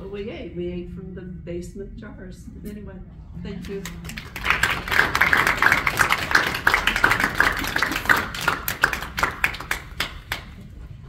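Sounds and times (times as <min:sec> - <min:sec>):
audience clapping: 0:03.6 - 0:10.7.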